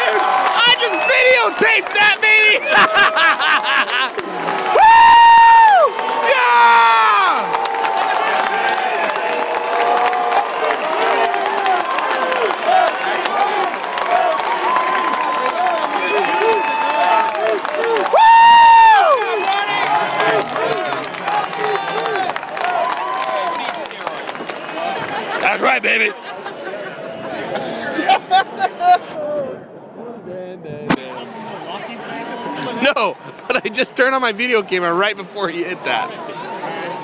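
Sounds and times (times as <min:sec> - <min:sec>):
crowd cheering and shouting: 0:00.0 - 0:29.6, 0:31.0 - 0:37.0.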